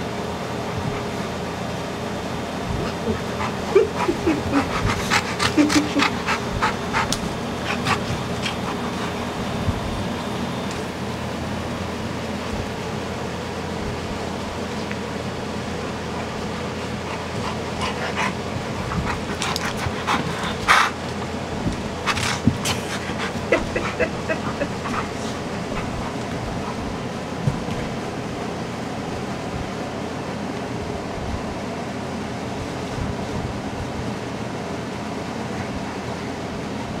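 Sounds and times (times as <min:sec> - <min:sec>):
window air conditioner running: 0:00.0 - 0:37.0
dogs play-wrestling: 0:00.3 - 0:29.9
dogs breathy bursts: 0:02.7 - 0:11.0, 0:16.0 - 0:27.2.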